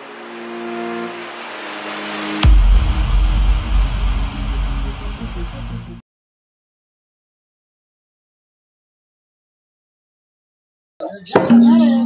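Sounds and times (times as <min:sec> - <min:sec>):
held electronic chords: 0:00.0 - 0:06.0
synthesized whoosh: 0:00.0 - 0:06.0.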